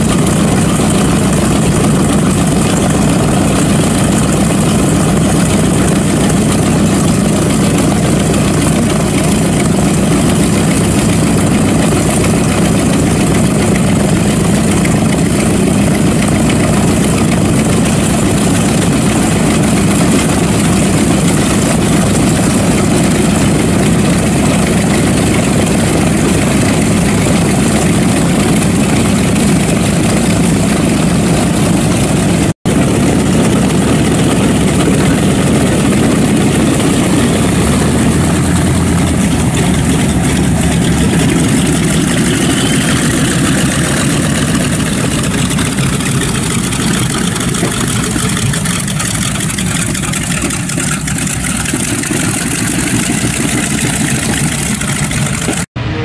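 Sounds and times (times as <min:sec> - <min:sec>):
radial aircraft engines running: 0:00.0 - 0:56.0.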